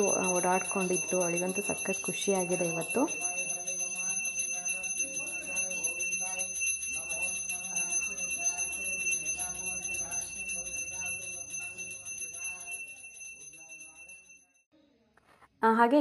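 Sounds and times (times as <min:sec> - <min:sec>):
hand bell ringing rapidly: 0:00.0 - 0:14.4.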